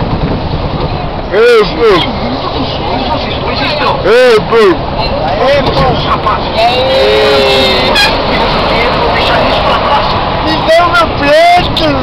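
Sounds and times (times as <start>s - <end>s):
bus interior rumble: 0.0s - 12.0s
indistinct passenger voices: 0.7s - 12.0s.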